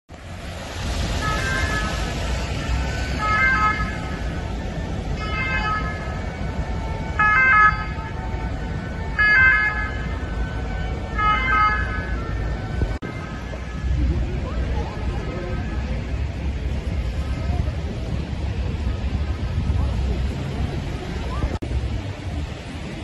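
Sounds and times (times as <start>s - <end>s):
siren calls: 0.8s - 17.0s.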